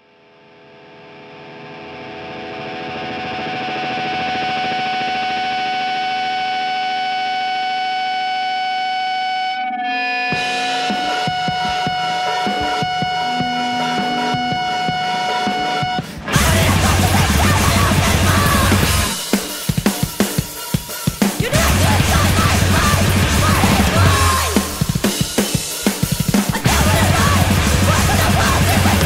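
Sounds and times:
distorted electric guitar chord: 0.0 - 19.8, 21.6 - 29.0
crackling guitar noise: 0.1 - 19.4, 21.5 - 29.0.

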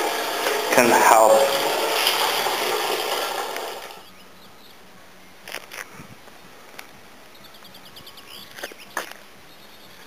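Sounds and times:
faint bird chirps: 4.0 - 6.0, 7.3 - 10.0.

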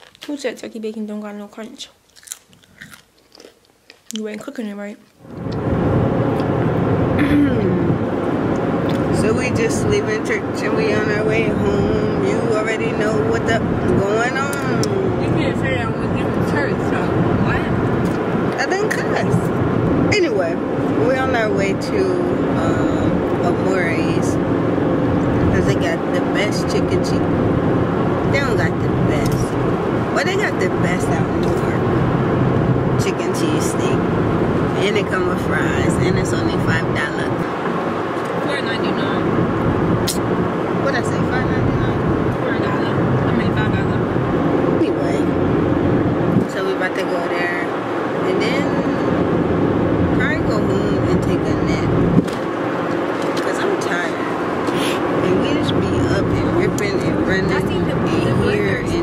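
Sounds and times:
person talking: 4.1 - 5.0, 7.2 - 8.0, 8.9 - 19.5, 20.1 - 24.4, 28.3 - 31.9, 46.4 - 49.2, 53.3 - 59.0
car cabin road and engine noise: 4.2 - 59.0.

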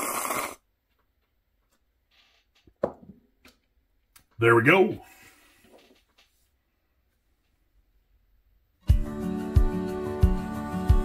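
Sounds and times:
person slurping coffee: 0.0 - 0.6.

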